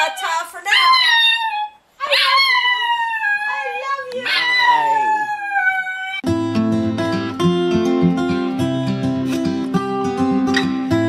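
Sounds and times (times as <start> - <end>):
small dog howling: 0.8 - 6.2.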